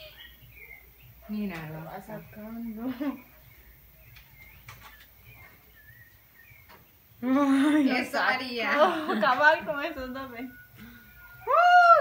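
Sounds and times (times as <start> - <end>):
faint bird chirps: 0.0 - 8.3, 9.5 - 12.0.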